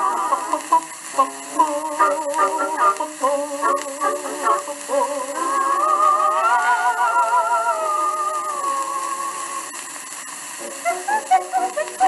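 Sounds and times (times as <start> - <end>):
old record dance music: 0.0 - 12.0
record surface hiss: 0.0 - 12.0.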